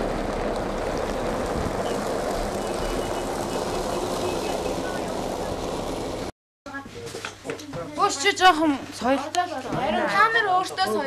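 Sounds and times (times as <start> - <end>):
diesel truck engines droning: 0.0 - 6.3
road and dust noise: 0.0 - 6.4.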